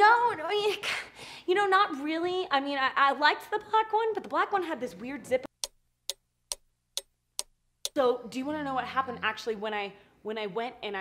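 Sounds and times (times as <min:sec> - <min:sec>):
clock ticking: 0:05.4 - 0:08.0.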